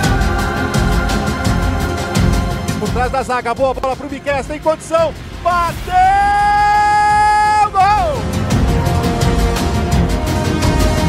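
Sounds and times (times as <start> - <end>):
background music with steady beat: 0.0 - 11.0
commentator shouting goal: 3.8 - 8.3.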